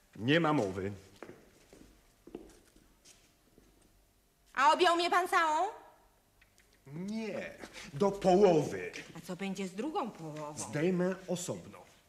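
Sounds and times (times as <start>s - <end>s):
footsteps on hard floor: 0.6s - 3.8s.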